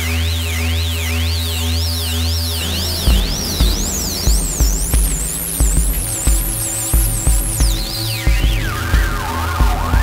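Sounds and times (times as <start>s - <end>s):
sweeping high synth tone: 0.0s - 8.9s
synthesizer bass drone: 0.0s - 10.0s
kick drum: 3.1s - 10.0s.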